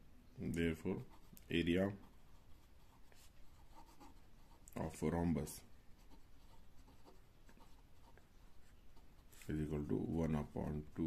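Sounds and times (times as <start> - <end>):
pen scratching on paper: 1.0 - 5.0, 6.0 - 11.0.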